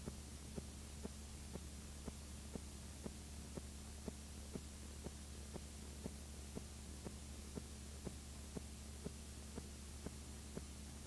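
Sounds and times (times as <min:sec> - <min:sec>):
faint electrical hum and hiss: 0:00.0 - 0:11.0.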